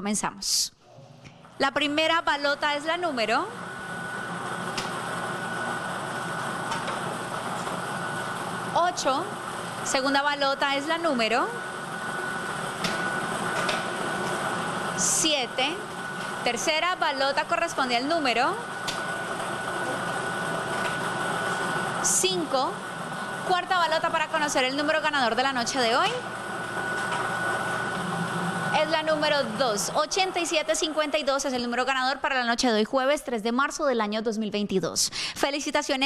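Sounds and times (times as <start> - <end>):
thin steady whine: 0.9 - 33.7
lottery machine whirring: 1.4 - 32.6.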